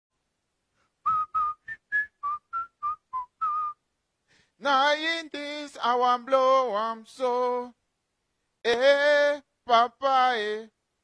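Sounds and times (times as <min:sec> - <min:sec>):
person whistling a tune: 0:01.0 - 0:03.8.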